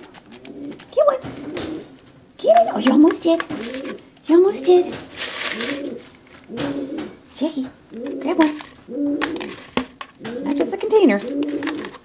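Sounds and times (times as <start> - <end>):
pigeon cooing: 0.0 - 2.0, 2.6 - 7.2, 7.9 - 9.6, 10.2 - 12.0
brief rustling rush: 5.0 - 6.2.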